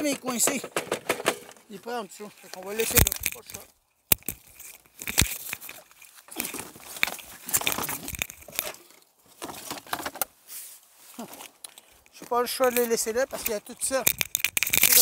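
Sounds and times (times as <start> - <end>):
debris crinkling and rustling: 0.0 - 10.3, 11.0 - 15.0.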